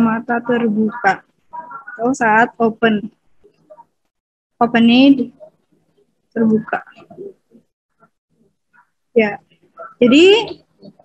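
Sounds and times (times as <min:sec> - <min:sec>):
faint murmur of person's voice: 0:00.0 - 0:04.0, 0:06.4 - 0:11.0.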